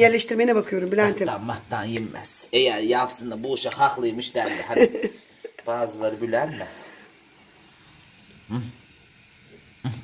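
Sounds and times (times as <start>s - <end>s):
person speaking: 0.0s - 6.8s
room hiss: 0.0s - 10.0s.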